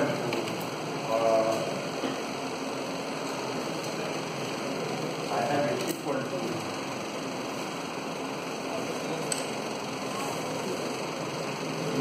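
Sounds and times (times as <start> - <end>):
electric fan whirring: 0.0 - 12.0.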